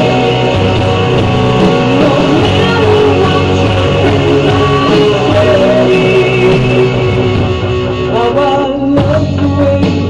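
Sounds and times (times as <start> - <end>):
clean electric guitar: 0.0 - 10.0
rock ballad backing instruments: 0.0 - 10.0.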